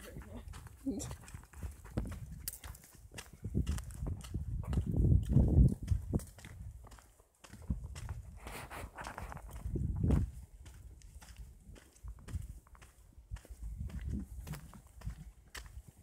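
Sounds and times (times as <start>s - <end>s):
footsteps on forest path: 0.0s - 16.0s.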